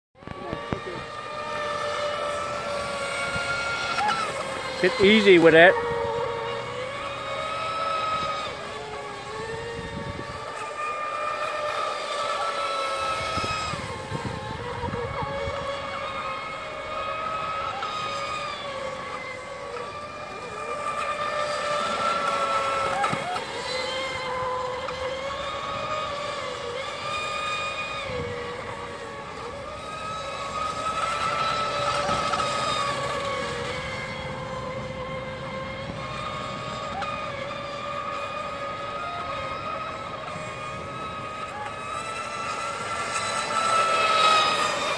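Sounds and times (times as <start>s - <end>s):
model boat motors whining: 0.2s - 44.9s.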